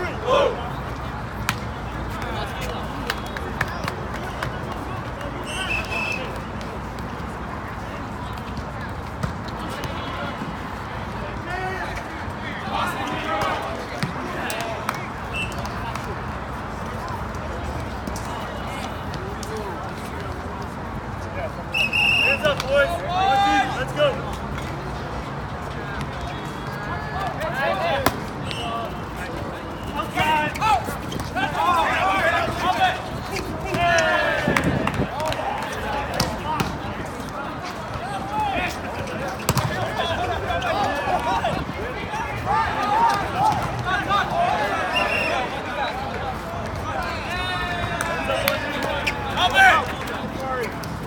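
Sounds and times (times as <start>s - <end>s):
people shouting: 0.0s - 0.7s, 31.4s - 36.5s.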